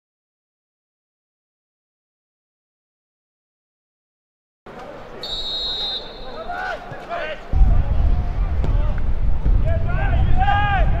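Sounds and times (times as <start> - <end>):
stadium crowd noise: 4.7 - 11.0
referee's whistle: 5.2 - 6.8.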